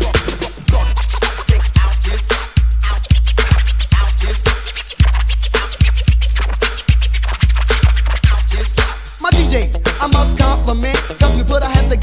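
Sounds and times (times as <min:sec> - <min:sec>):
deep bass drum beat: 0:00.0 - 0:12.0
turntable scratching: 0:00.0 - 0:12.0.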